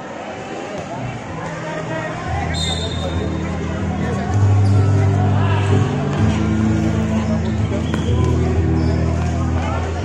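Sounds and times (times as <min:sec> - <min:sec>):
spectators' voices: 0:00.0 - 0:10.0
music with low notes: 0:03.0 - 0:10.0.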